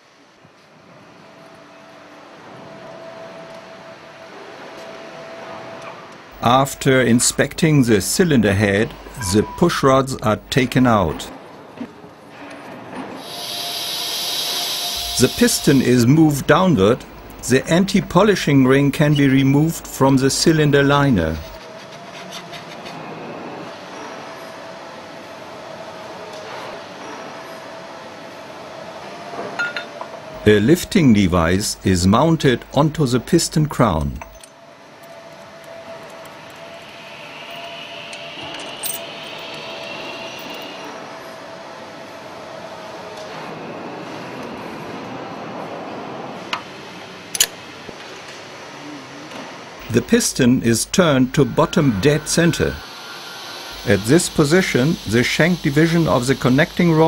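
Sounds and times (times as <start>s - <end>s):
steady background hum: 0.0s - 26.2s, 26.8s - 57.0s
compressed air hiss: 13.2s - 17.4s, 51.4s - 57.0s
air tool whine: 13.2s - 18.2s, 36.5s - 41.0s, 49.8s - 57.0s.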